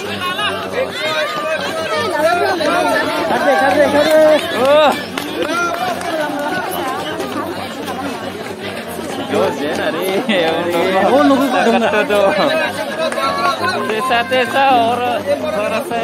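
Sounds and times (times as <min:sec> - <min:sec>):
crowd chattering and calling out: 0:00.0 - 0:16.0.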